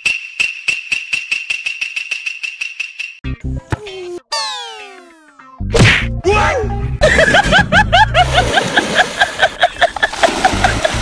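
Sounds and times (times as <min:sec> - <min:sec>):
music with warbling bending tones: 0:03.2 - 0:07.0
loud cartoon whack: 0:05.7 - 0:06.1.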